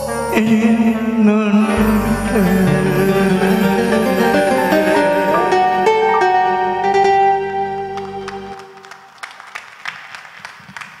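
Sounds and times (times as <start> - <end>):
sparse audience applause: 8.0 - 11.0.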